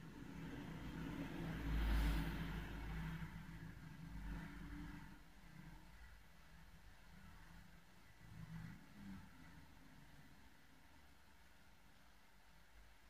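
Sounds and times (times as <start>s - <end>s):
passing vehicle rumble: 0.0s - 11.0s.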